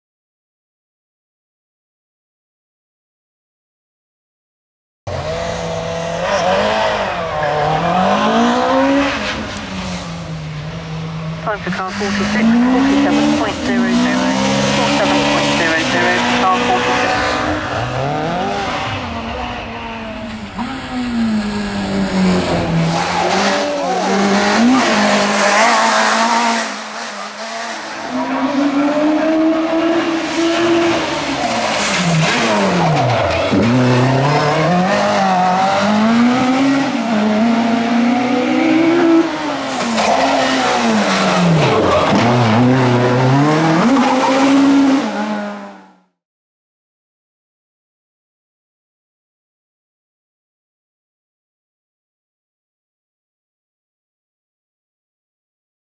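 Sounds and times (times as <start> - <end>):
racing car engine revving: 5.1 - 46.2.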